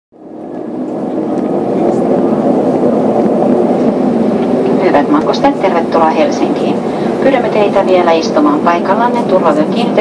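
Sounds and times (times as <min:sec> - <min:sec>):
jet engine and runway rumble: 0:00.1 - 0:10.0.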